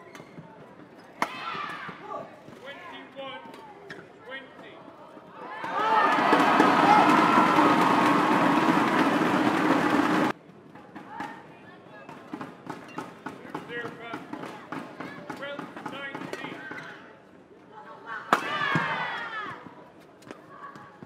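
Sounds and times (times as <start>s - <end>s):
shoes squeaking on court: 0.0s - 1.2s
crowd murmur: 4.8s - 10.4s
crowd cheering loudly: 5.4s - 10.3s.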